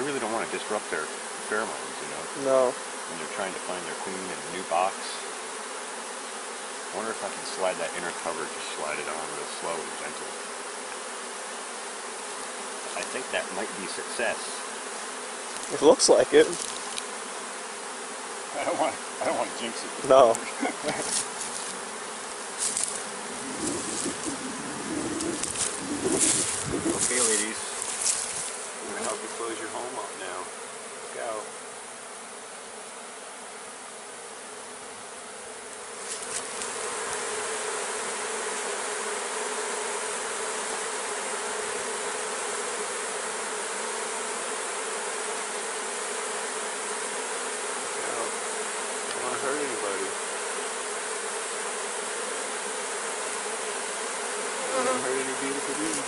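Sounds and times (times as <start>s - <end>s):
bee swarm buzzing: 0.0s - 56.0s.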